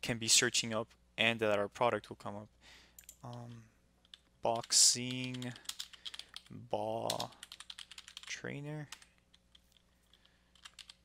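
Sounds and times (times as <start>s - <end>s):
computer keyboard keystrokes: 4.0s - 6.5s, 7.1s - 8.3s, 10.1s - 11.0s.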